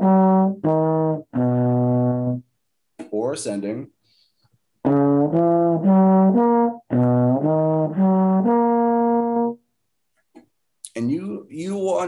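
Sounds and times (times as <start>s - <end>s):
solo trombone playing: 0.0s - 2.5s, 4.8s - 9.6s.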